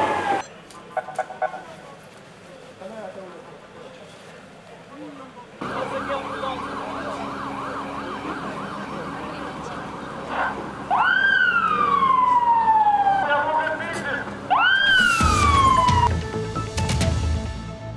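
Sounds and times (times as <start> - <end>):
emergency vehicle siren: 5.6 - 13.8, 14.4 - 16.4.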